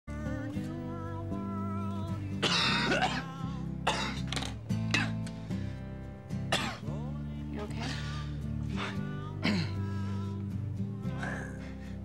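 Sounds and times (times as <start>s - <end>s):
soft guitar music: 0.1s - 12.0s
person coughing: 2.4s - 4.3s, 6.5s - 6.8s, 9.4s - 9.8s.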